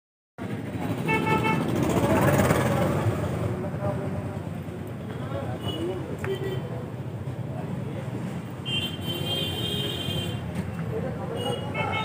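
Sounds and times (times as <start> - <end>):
street traffic: 0.4 - 12.0
vehicle horn beeping: 1.0 - 1.7, 8.6 - 10.5, 11.3 - 12.0.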